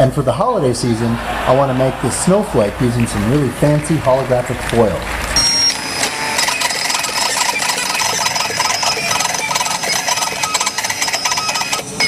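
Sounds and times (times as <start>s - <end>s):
plotter motors whining: 5.1s - 12.0s
quick fine ticking: 5.1s - 12.0s.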